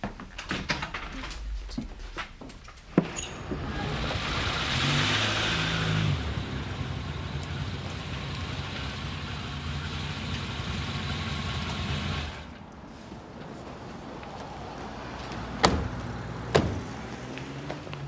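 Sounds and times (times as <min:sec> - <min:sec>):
car engine running: 0:03.6 - 0:12.6.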